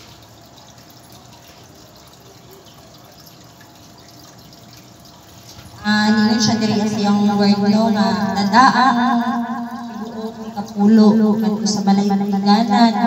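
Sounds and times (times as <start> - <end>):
low steady background noise: 0.0 - 13.0
woman speaking over loudspeaker: 5.8 - 9.3, 10.0 - 13.0.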